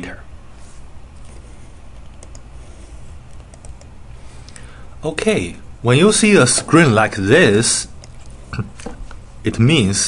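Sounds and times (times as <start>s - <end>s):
low steady hum: 0.0s - 10.0s
computer keyboard clicks: 2.0s - 2.5s, 3.3s - 3.9s.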